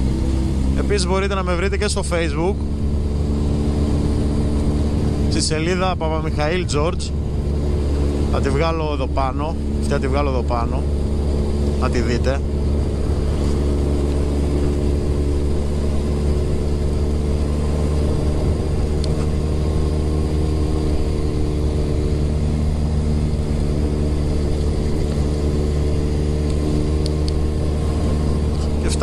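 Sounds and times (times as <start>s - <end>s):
motorcycle engine cruising: 0.0s - 29.0s.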